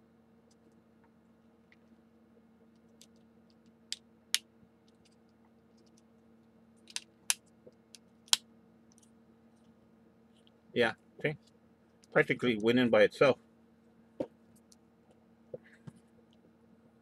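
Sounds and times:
faint steady hum: 0:00.0 - 0:17.0
plastic parts clicking: 0:06.9 - 0:07.4.

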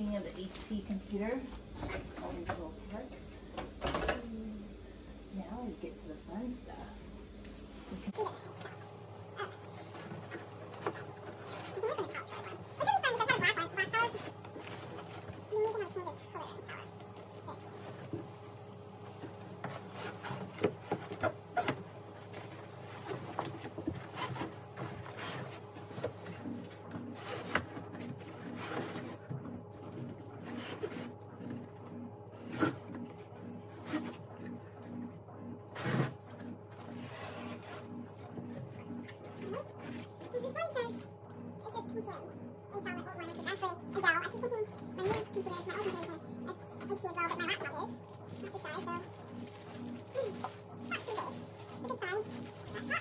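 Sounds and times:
faint steady hum: 0:00.0 - 0:53.0.

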